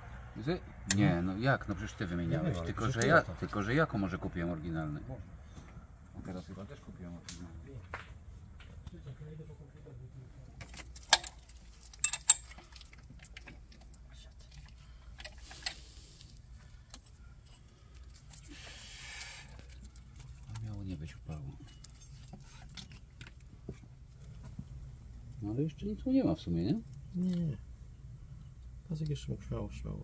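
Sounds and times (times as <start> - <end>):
rustling and handling noise: 10.4 - 29.0
metallic clinks of hand tools: 11.1 - 12.8.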